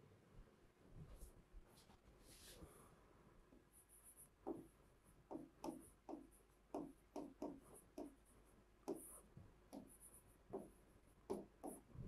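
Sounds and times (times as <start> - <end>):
stylus tapping on display board: 5.3 - 8.2, 10.5 - 10.7, 11.3 - 11.8.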